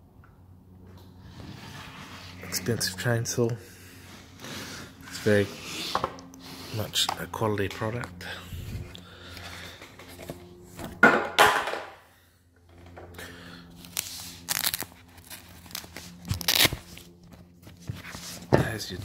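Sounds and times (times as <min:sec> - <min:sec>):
fabric pouch handling: 0:13.8 - 0:18.5.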